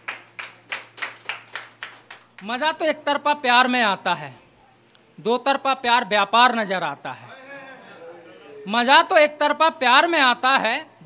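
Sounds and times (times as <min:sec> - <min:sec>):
people clapping: 0:00.0 - 0:02.6.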